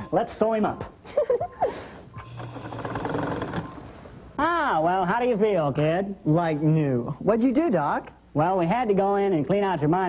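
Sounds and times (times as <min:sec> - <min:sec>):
sewing machine running: 0:02.3 - 0:04.0.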